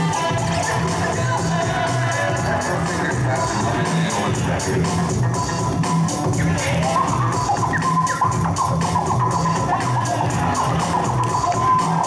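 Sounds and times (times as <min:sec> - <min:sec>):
hip-hop music with heavy bass: 0:00.0 - 0:12.0.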